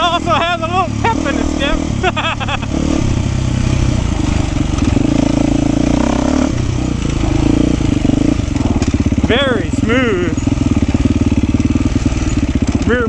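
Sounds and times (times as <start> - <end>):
dirt bike engine: 0.0 - 13.0.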